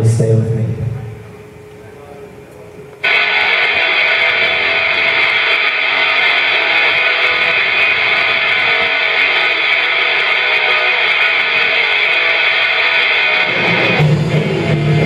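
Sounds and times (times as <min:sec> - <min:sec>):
electric guitar strummed chords: 0:00.0 - 0:15.0.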